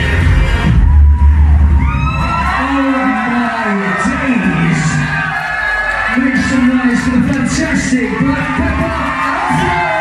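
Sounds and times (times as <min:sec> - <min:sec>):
club dance music with heavy bass: 0:00.0 - 0:10.0
amplified voice over sound system: 0:02.6 - 0:05.2.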